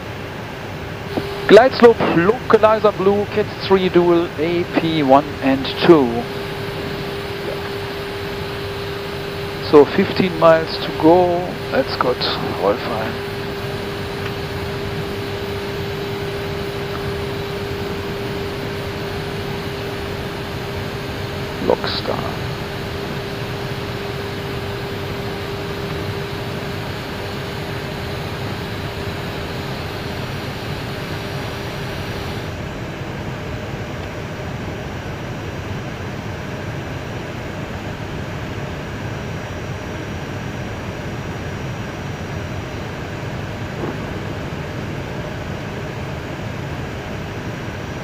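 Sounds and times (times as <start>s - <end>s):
mid-pitched hum: 0.0s - 48.0s.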